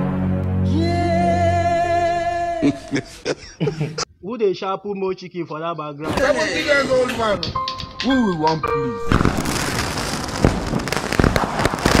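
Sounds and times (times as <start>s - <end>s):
crackling hiss with sharp pops: 9.1s - 12.0s.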